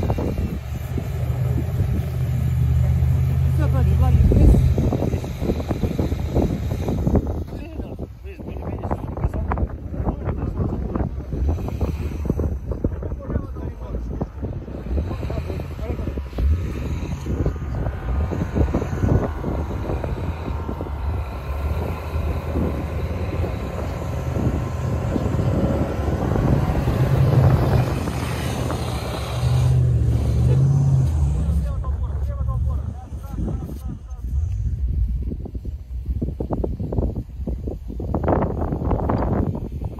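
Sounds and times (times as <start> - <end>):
suv engines revving in snow: 0.0 - 7.5, 10.7 - 35.7
wind buffeting microphone: 0.0 - 39.9.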